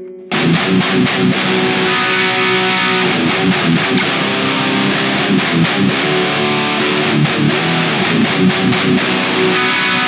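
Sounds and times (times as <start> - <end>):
distorted electric guitar riff: 0.0 - 10.0.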